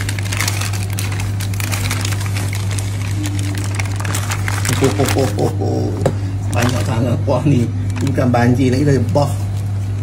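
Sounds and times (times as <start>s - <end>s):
paper crinkling and rustling: 0.0s - 5.7s, 6.5s - 10.0s
steady low hum: 0.0s - 10.0s.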